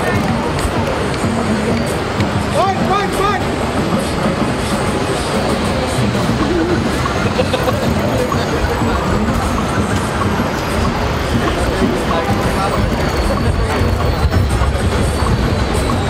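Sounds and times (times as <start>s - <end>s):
crowd chattering: 0.0s - 16.0s
low city rumble: 0.0s - 16.0s.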